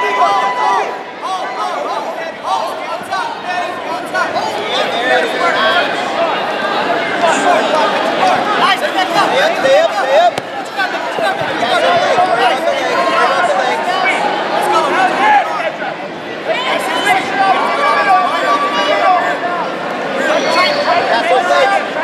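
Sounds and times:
coaches calling out: 0.0 - 22.0
crowd babble of many voices: 0.0 - 22.0.

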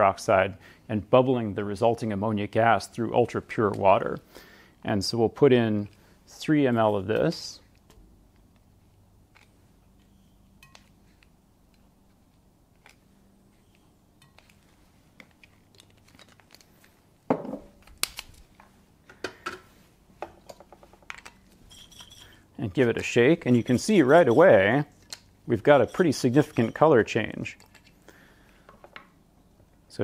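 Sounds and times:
glassware and bottles clinking: 21.6 - 22.5, 23.4 - 24.8, 25.6 - 27.7.

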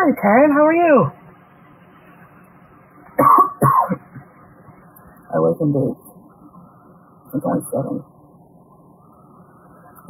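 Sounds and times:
woman coughing: 3.2 - 4.2.

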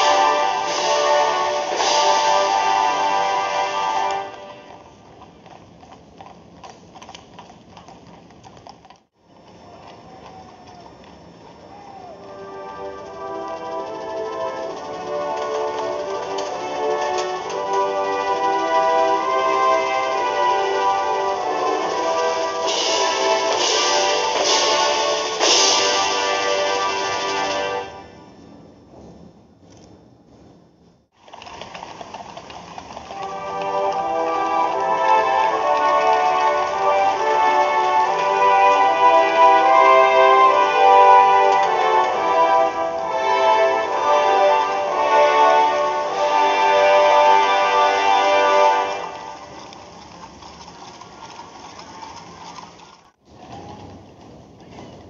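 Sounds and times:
band music playing: 0.0 - 4.8, 12.1 - 28.2, 33.1 - 49.5
horses hooves clip-clopping: 0.0 - 55.0.

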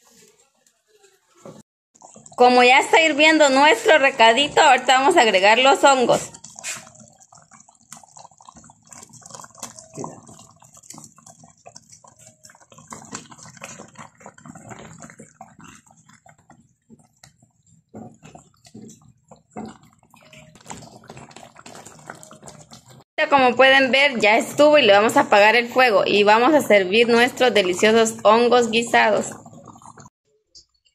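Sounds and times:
thick sauce simmering: 2.0 - 23.1, 26.4 - 30.1
bubbles popping: 2.0 - 30.1.

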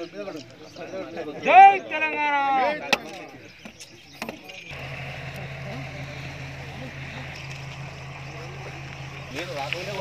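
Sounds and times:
excavator diesel engine droning: 4.7 - 10.0.

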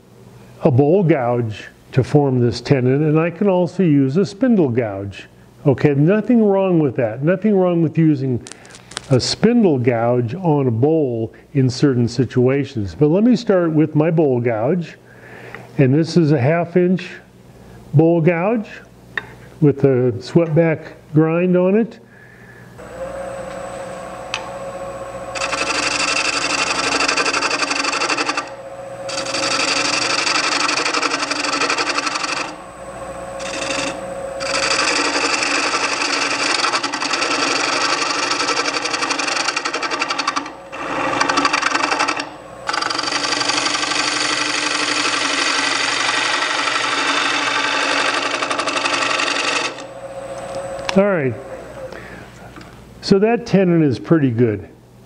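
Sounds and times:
lathe motor hum: 22.8 - 52.0
gouge cutting wood: 24.3 - 50.9.

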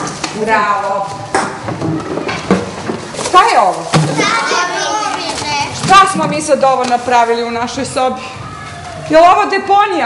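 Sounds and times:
bottles and cans clattering: 1.3 - 7.2.

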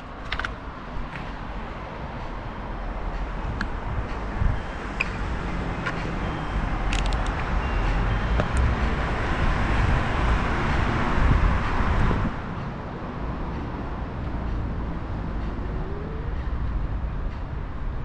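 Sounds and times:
city traffic: 0.0 - 18.0.

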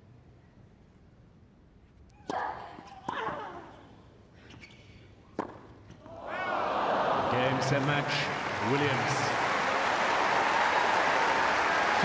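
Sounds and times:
tennis ball struck by racquet: 5.4 - 5.7.

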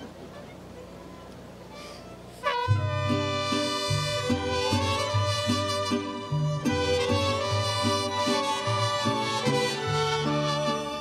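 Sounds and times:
mariachi band playing: 0.0 - 11.0
trumpets and violins: 1.8 - 11.0.

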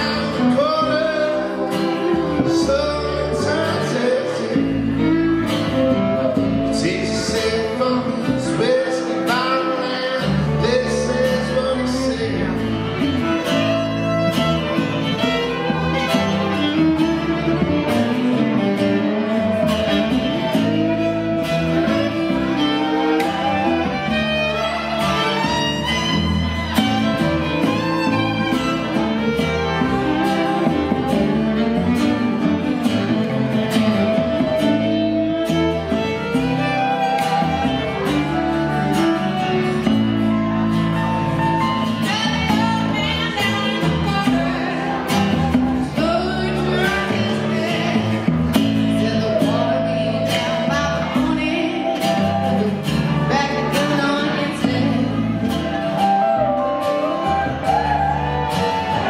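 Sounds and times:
bowed fiddle melody: 0.0 - 59.0
plucked upright bass: 0.0 - 59.0
strummed acoustic guitar: 0.0 - 59.0.

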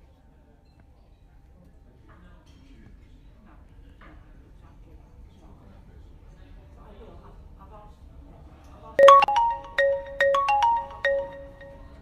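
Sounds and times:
phone ringtone melody: 9.0 - 12.0.

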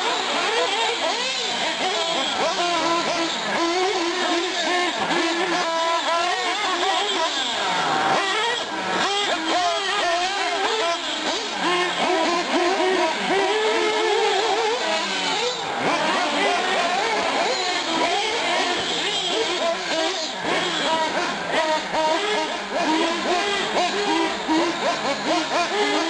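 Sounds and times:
model car engines revving: 0.0 - 26.0.

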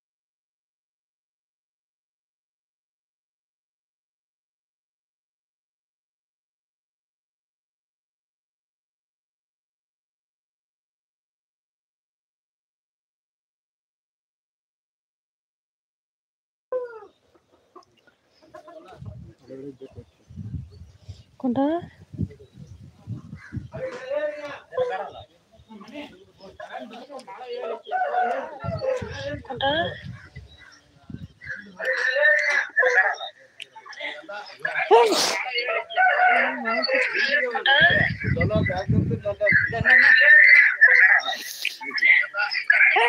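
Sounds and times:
people talking: 18.5 - 43.0
chicken squawk: 31.4 - 33.3, 39.9 - 43.0
sharp breathy vocal outburst: 34.9 - 35.4.

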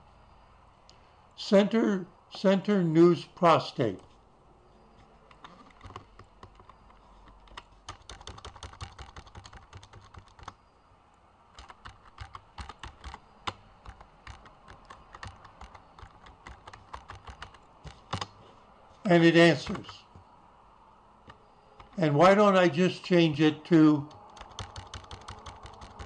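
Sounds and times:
typing on computer keyboard: 5.3 - 10.6, 11.5 - 18.4, 24.1 - 26.0.

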